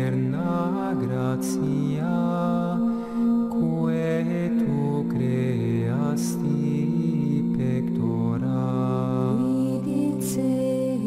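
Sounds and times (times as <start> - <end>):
sacred chant singing: 0.0 - 11.0.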